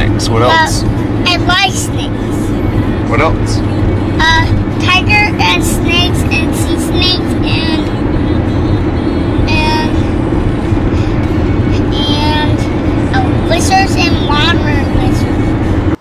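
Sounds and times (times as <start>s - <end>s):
car cabin road and engine rumble: 0.0s - 16.0s.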